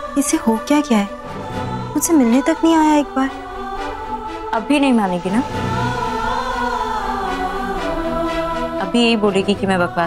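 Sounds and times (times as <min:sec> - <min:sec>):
dramatic choir-like chord: 0:00.0 - 0:10.0.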